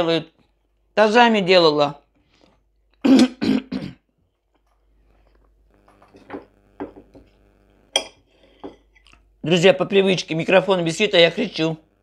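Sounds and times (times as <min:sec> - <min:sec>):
woman coughing: 0:03.0 - 0:04.1
cutlery clinking on plate: 0:08.0 - 0:08.8.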